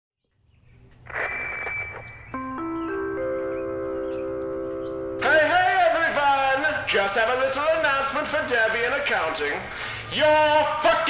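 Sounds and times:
man speaking: 5.2 - 11.0.

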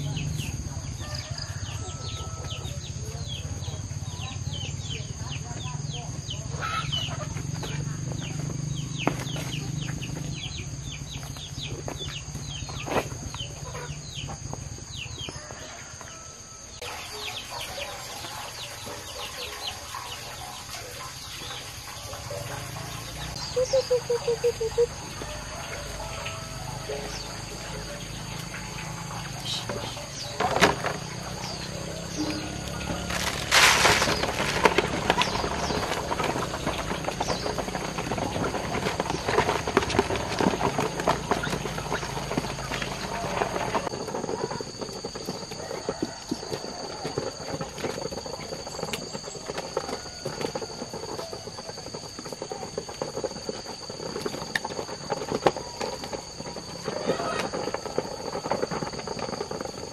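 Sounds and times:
ducks pecking and dabbling: 0.0 - 59.9.

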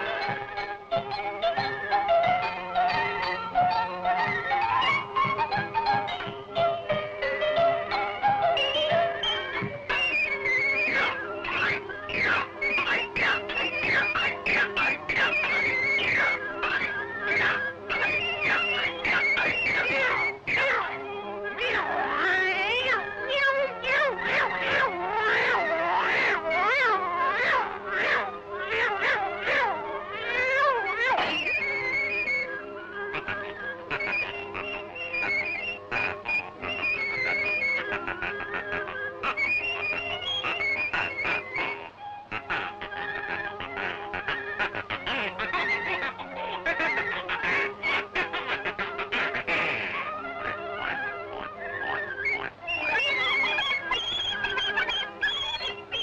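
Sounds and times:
cartoon piglets squealing: 0.0 - 6.3, 7.8 - 56.0
cartoon cat meowing melody: 7.6 - 32.4.

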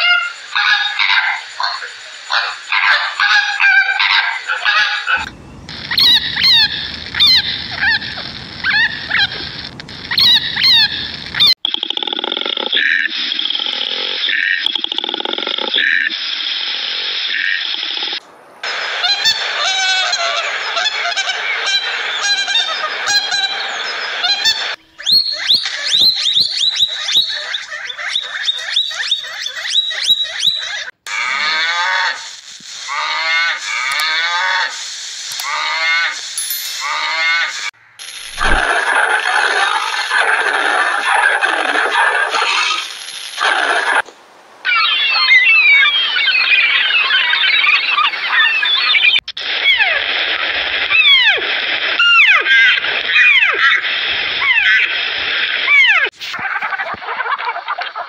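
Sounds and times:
animal calls: 0.0 - 11.6, 18.9 - 32.3, 44.6 - 50.0.

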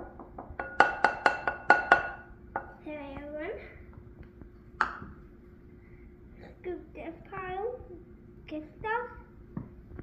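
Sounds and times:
metal cup tapping glass bowl: 0.0 - 2.7.

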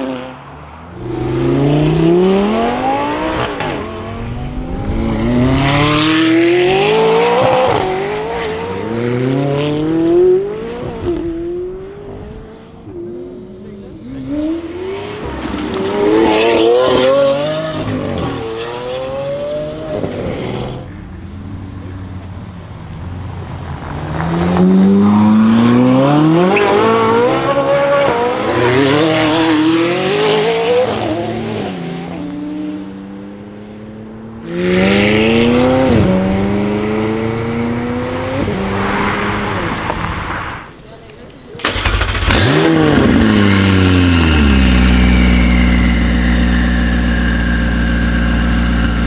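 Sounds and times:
sports car accelerating hard: 0.9 - 21.2, 23.6 - 40.6, 41.6 - 49.0
car engine accelerating hard: 1.0 - 12.6, 41.6 - 49.0.

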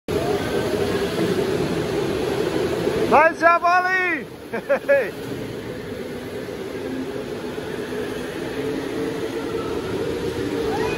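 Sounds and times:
go-karts engine drone: 0.1 - 3.4, 4.1 - 10.9.

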